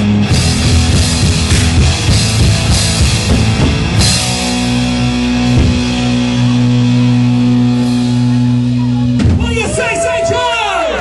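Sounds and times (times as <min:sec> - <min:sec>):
bass guitar: 0:00.0 - 0:11.0
electric guitars: 0:00.0 - 0:11.0
drum hits: 0:00.3 - 0:06.5, 0:09.1 - 0:09.6.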